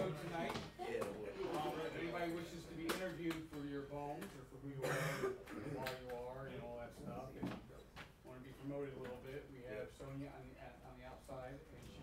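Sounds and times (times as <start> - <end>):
indistinct conversation: 0.0 - 11.8.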